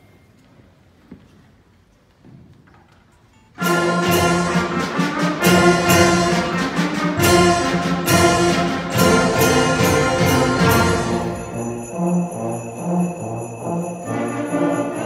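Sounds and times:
concert band playing: 3.6 - 15.0.

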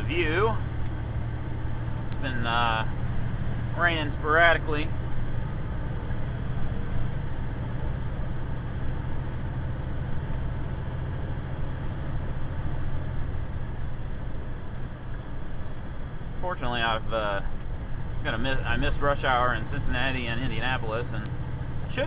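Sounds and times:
road noise inside cab: 0.0 - 22.0
truck diesel engine running: 0.0 - 22.0.

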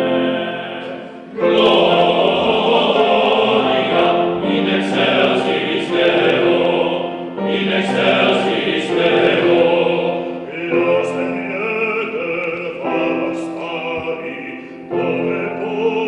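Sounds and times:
male choir singing in harmony: 0.0 - 16.0.

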